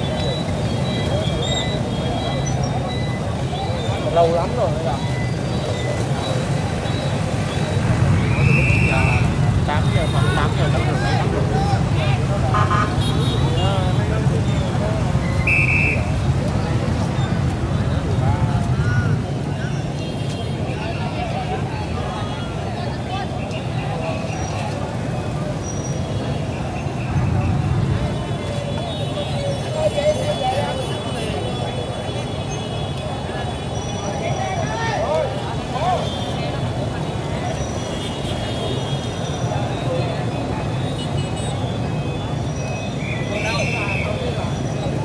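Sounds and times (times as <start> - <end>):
crowd voices: 0.0 - 45.0
motorbike engines rumbling: 0.0 - 45.0
people talking: 0.0 - 45.0.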